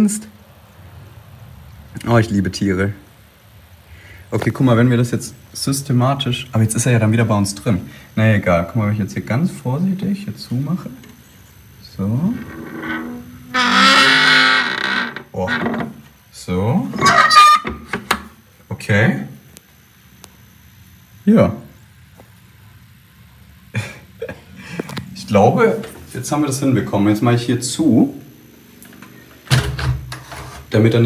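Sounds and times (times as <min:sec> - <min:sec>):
wooden shutter hinges creaking: 0:12.0 - 0:16.1, 0:16.9 - 0:18.2.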